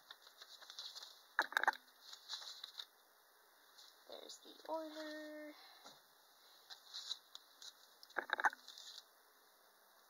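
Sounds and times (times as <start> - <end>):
packaging rustling and crinkling: 0.0 - 2.9, 6.7 - 8.0, 8.6 - 9.1.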